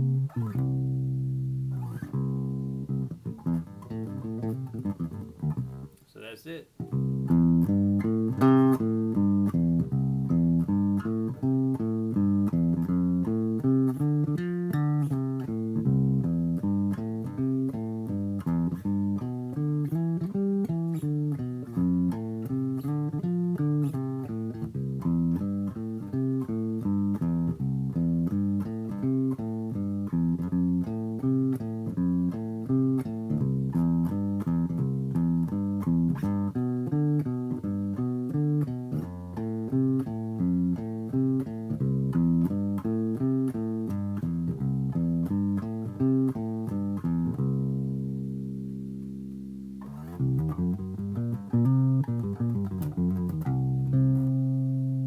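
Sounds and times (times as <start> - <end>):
electric bass guitar plucked: 0.0 - 55.0.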